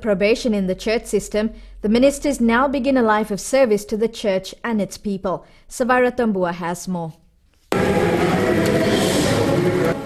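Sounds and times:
congregation singing a hymn: 0:07.7 - 0:10.0.

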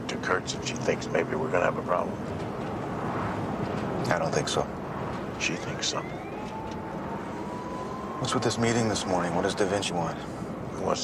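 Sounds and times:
car road and engine rumble: 0:00.0 - 0:11.0
faint thin rising tone: 0:05.6 - 0:09.5.

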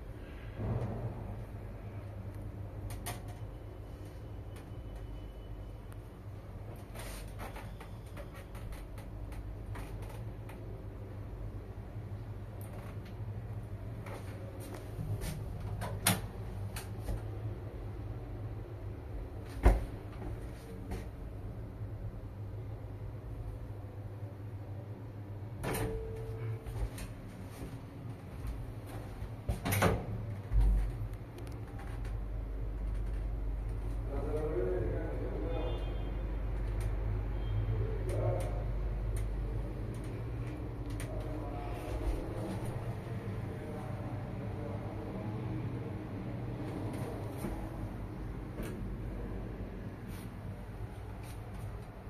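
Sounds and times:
elevator running hum: 0:00.0 - 0:52.0.

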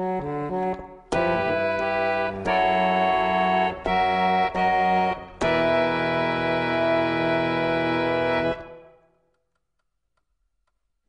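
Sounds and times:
harmonium chord: 0:00.0 - 0:09.0.

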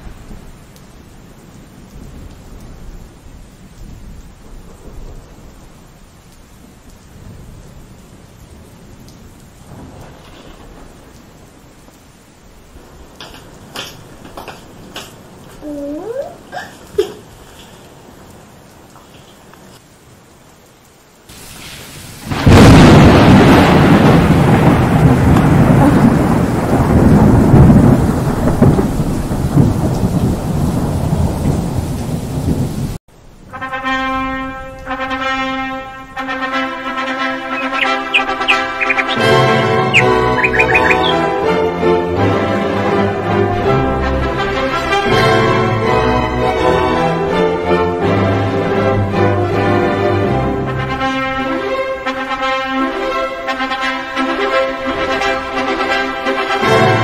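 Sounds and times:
thunder rumbling: 0:00.0 - 0:19.3, 0:21.3 - 0:51.6
steady rain: 0:00.0 - 0:57.0.

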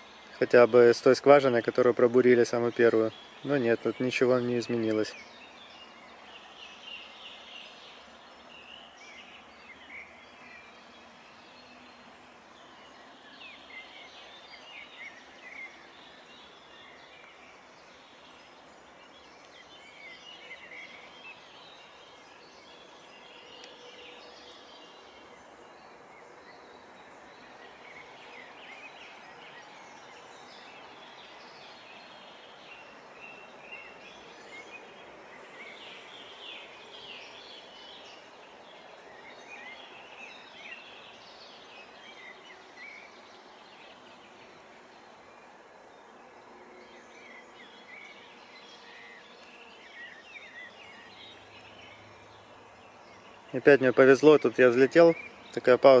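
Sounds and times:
birds chirping and singing: 0:00.0 - 0:56.0
steady background hiss: 0:00.0 - 0:56.0.

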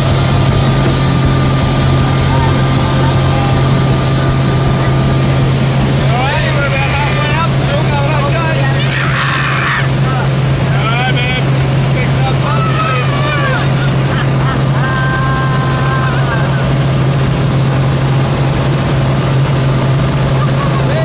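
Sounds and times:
propeller plane engine drone: 0:00.0 - 0:21.0.

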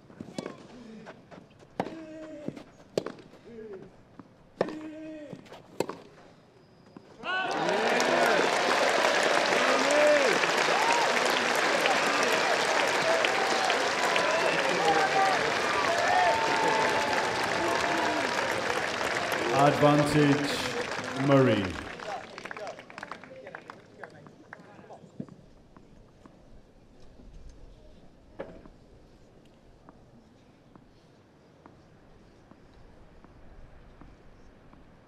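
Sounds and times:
crowd cheering and applauding: 0:07.2 - 0:23.8.

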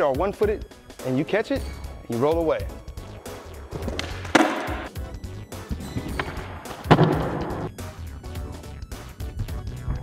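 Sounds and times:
skateboard wheels rolling on concrete: 0:03.2 - 0:07.7
skateboard clacking on concrete: 0:03.8 - 0:04.9.

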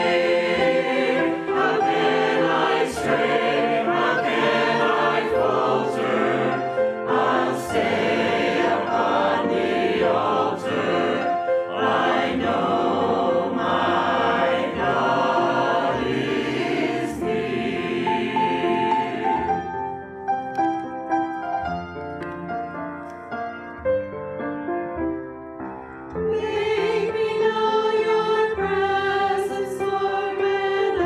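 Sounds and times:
mixed choir singing a hymn: 0:00.0 - 0:20.0, 0:26.2 - 0:31.0.

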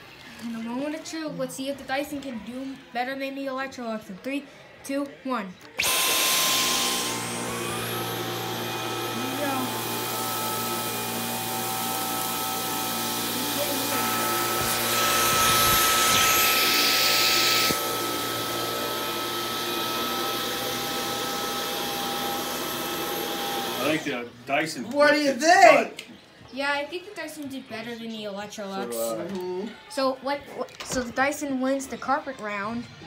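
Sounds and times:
vacuum cleaner whine: 0:05.8 - 0:24.2.

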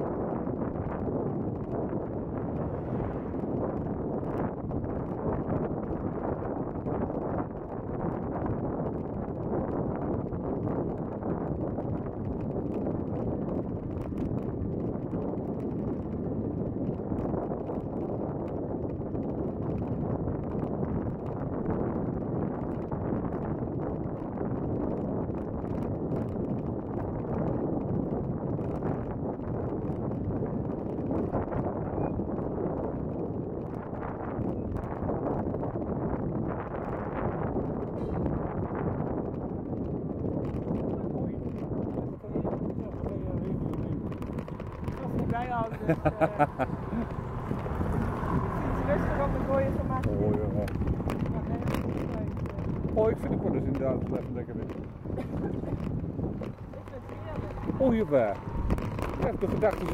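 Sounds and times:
bicycle tyre noise: 0:00.0 - 0:59.9
wind on microphone: 0:00.0 - 0:59.9
small clicks and rattles: 0:39.7 - 0:48.4, 0:50.0 - 0:59.9.

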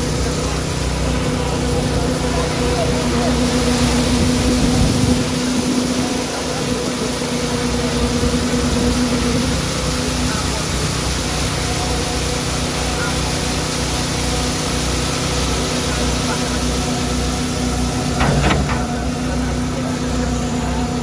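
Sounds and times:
excavator diesel engine running: 0:00.0 - 0:21.0.

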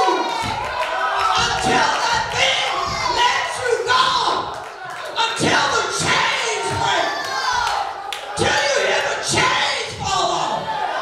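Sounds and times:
congregation shouting responses: 0:00.0 - 0:11.0
preacher speaking over microphone: 0:01.4 - 0:07.2, 0:08.3 - 0:10.7.

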